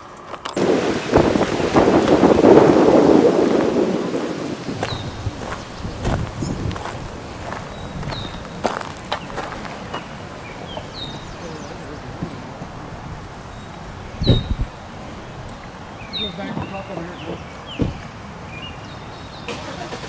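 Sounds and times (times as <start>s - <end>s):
wind buffeting microphone: 0.6s - 19.7s
bird chirps: 4.9s - 6.7s, 7.7s - 12.0s, 13.5s - 14.6s.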